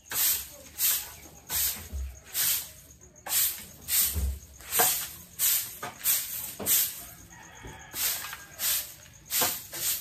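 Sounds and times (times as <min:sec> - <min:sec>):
broom sweeping concrete: 0:00.0 - 0:10.0
rooster crowing: 0:06.9 - 0:09.0.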